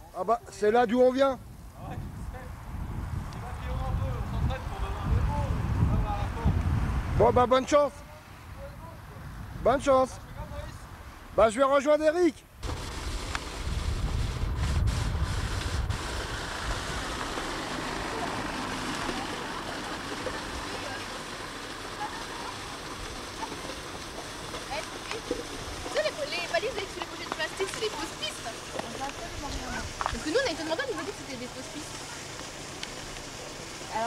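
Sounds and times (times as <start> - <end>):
steady background hiss: 7.3 - 34.0
outdoor rushing noise: 12.6 - 34.0.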